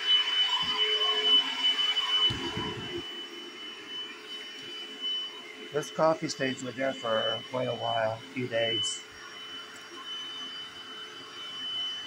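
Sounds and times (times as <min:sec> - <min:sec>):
carpet cleaner motor whining: 0:00.0 - 0:12.0.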